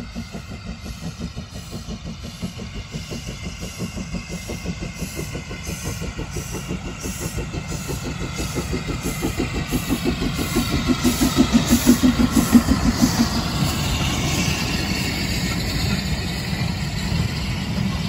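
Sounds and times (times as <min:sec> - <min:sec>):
steam locomotive exhaust beats: 0:00.0 - 0:18.0.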